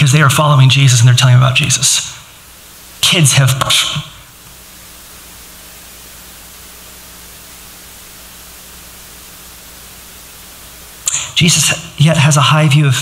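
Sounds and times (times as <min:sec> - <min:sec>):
faint electrical hum: 0:00.0 - 0:13.0
steady hiss: 0:00.0 - 0:13.0.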